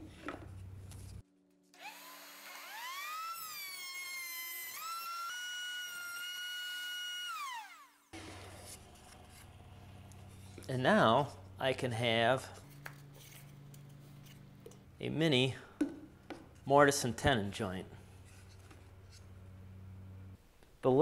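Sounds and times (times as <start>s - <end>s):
router bit cutting wood: 1.8s - 9.4s
router whining: 1.8s - 10.6s.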